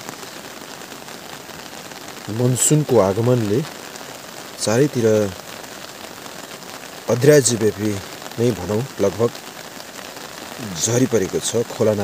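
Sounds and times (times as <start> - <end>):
steady rain falling: 0.0 - 12.0.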